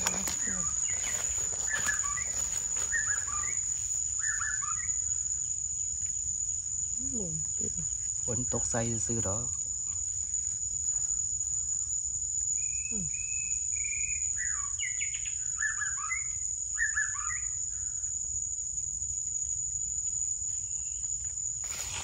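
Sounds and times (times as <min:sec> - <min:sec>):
insects droning: 0:00.0 - 0:22.0
bird singing whistled notes: 0:00.4 - 0:05.1, 0:12.6 - 0:17.6.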